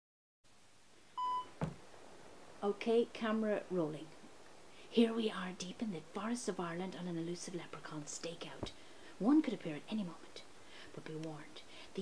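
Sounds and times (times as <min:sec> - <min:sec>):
faint hiss: 0:00.5 - 0:12.0
camera being handled knock: 0:01.6 - 0:01.8.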